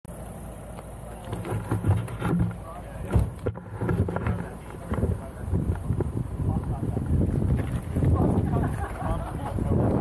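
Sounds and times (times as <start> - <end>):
muffled talk: 2.4 - 7.2, 8.0 - 10.0.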